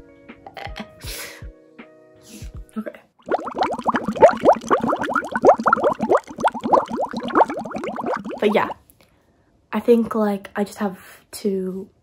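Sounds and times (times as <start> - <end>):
rapid bubbling gurgling: 3.2 - 8.8.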